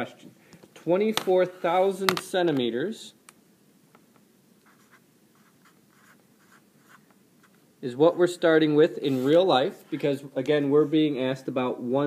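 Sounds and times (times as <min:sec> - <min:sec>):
marker writing strokes on paper: 0:04.6 - 0:07.6.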